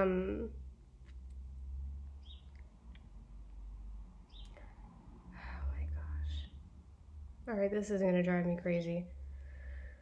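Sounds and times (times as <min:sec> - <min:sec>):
woman whispering: 0:05.4 - 0:06.5.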